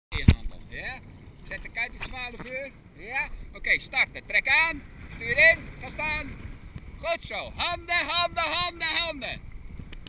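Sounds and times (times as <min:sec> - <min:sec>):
seawater sloshing: 0:00.2 - 0:10.0.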